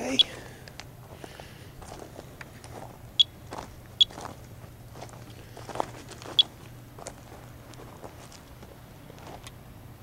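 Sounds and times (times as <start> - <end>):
geiger counter chirps: 0.0 - 0.3, 3.2 - 3.4, 4.0 - 4.2
footsteps crunching on mulch: 0.0 - 9.5.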